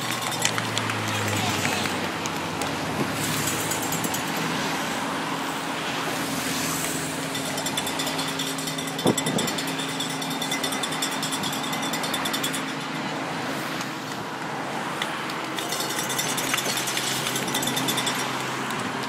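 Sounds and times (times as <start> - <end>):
cars driving past: 0.0 - 19.0
fast high ticking: 7.2 - 13.0.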